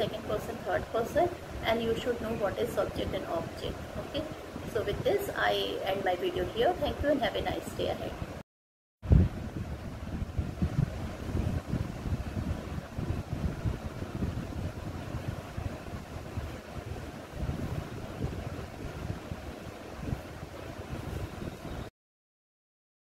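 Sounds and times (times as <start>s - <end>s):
wind buffeting microphone: 0.0s - 8.4s, 9.0s - 21.9s.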